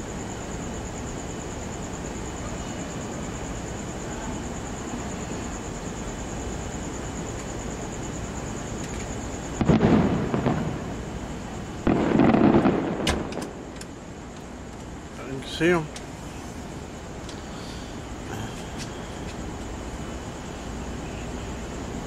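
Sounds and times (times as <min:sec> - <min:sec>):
fireworks crackling: 0:06.5 - 0:21.0
fireworks booming: 0:09.4 - 0:13.9.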